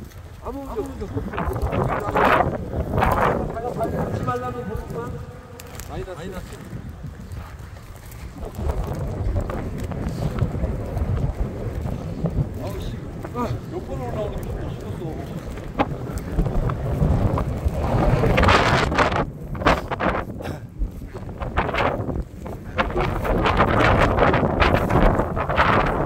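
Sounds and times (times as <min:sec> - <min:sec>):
footsteps through dry grass: 0:00.0 - 0:26.0
wind rumbling on microphone: 0:00.0 - 0:26.0.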